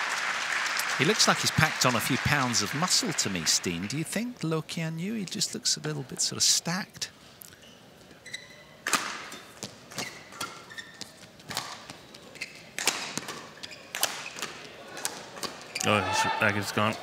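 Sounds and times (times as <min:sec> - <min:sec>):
shoes squeaking on court: 0:07.6 - 0:14.7
rackets striking shuttlecock: 0:12.8 - 0:15.6.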